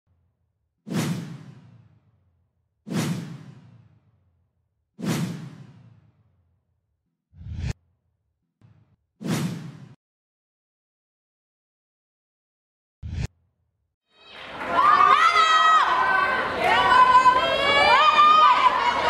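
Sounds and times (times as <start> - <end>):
whoosh hits: 0.9 - 2.0, 2.9 - 4.0, 5.0 - 6.1.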